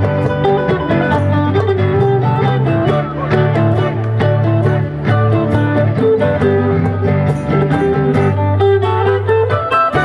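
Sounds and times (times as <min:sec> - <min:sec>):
mandolin and guitars picking: 0:00.0 - 0:10.0.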